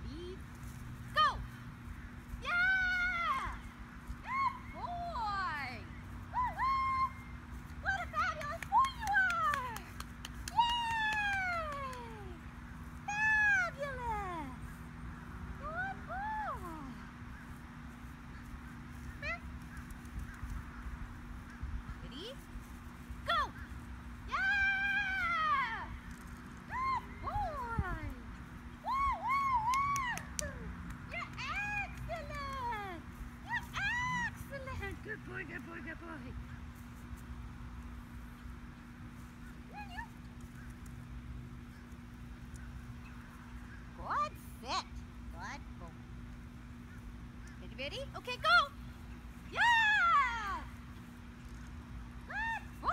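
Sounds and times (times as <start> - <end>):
steady low hum: 0.0 - 52.9.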